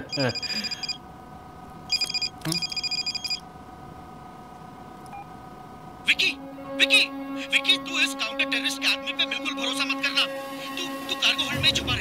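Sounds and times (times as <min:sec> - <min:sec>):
mobile phone ringing: 0:00.0 - 0:01.0, 0:01.9 - 0:03.4
steady hum: 0:00.0 - 0:12.0.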